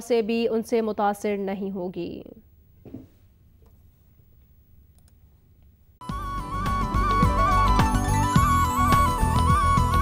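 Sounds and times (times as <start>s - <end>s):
soft clicks: 4.4s - 5.7s.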